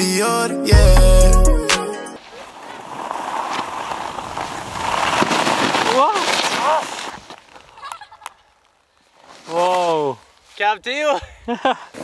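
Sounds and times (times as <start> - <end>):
snowboard rushing through snow: 2.1 - 8.2.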